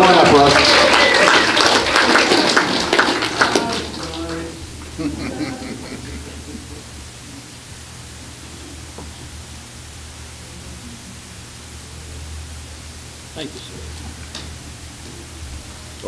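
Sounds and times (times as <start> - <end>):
low hum: 1.1 - 16.0
steady hiss: 1.5 - 16.0.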